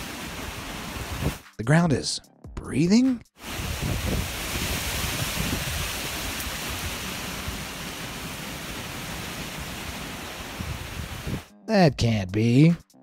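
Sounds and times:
wind rushing through trees: 0.0s - 1.4s, 3.4s - 11.5s
wind buffeting microphone: 3.5s - 7.7s, 9.8s - 11.5s.

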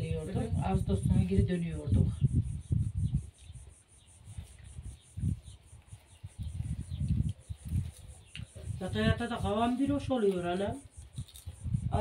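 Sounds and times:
woman speaking: 0.0s - 2.2s, 8.7s - 10.8s.

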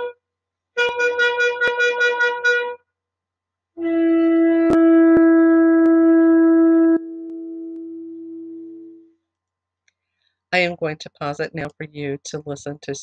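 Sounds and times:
shofar blast: 0.8s - 2.8s, 3.8s - 9.0s.

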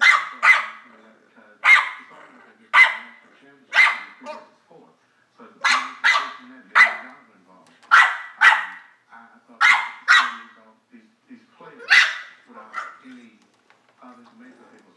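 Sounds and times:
dog barking: 0.0s - 0.9s, 1.6s - 4.5s, 5.6s - 7.2s, 7.9s - 9.0s, 9.6s - 10.6s, 11.8s - 13.0s.

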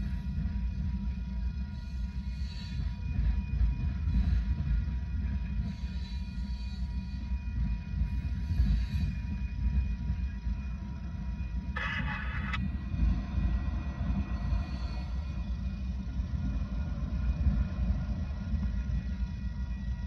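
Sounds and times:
faint steady tones: 0.0s - 20.0s
brief harsh noise: 11.8s - 12.6s.

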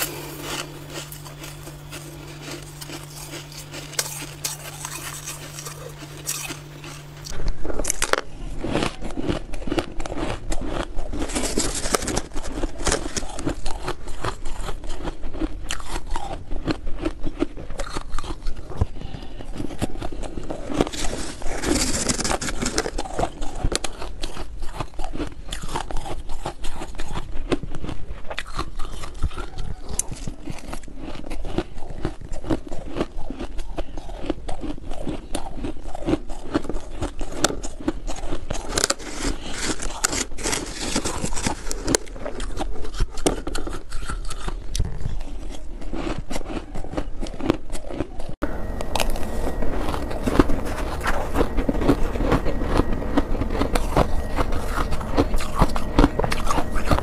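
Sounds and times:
chewing crunchy ice: 0.0s - 57.0s.

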